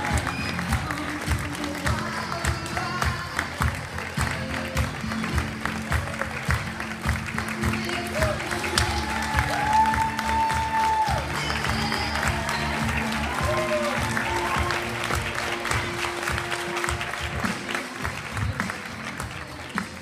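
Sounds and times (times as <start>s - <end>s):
crowd applauding: 0.0s - 20.0s
music playing: 0.0s - 20.0s.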